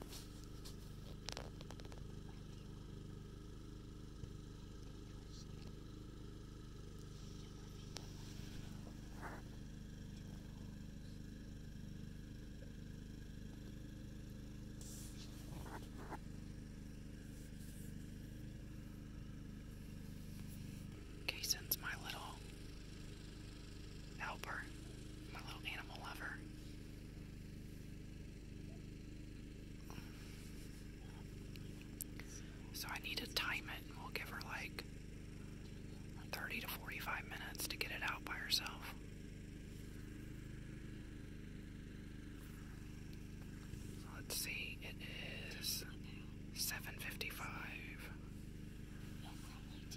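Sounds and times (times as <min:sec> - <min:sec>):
low background hum: 0:00.0 - 0:49.9
hushed whispering: 0:04.9 - 0:05.8, 0:21.3 - 0:22.5, 0:24.2 - 0:26.6, 0:29.8 - 0:34.8, 0:36.2 - 0:39.0, 0:43.7 - 0:48.2, 0:48.9 - 0:49.9.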